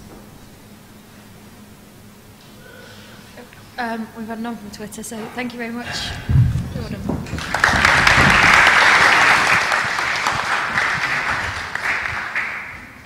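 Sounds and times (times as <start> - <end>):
audience clapping: 7.2 - 13.0.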